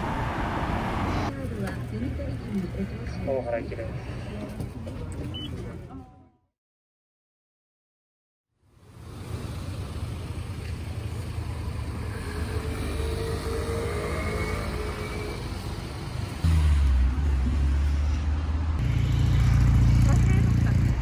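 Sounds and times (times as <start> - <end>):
bus engine and road rumble: 0.0 - 6.4, 8.6 - 21.0.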